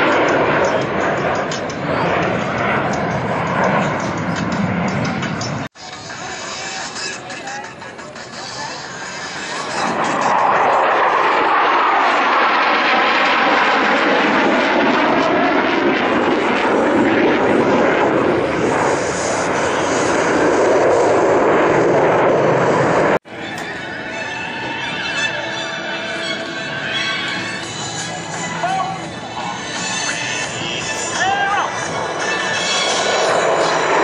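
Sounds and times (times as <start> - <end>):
jet engines roaring past: 0.0 - 34.0.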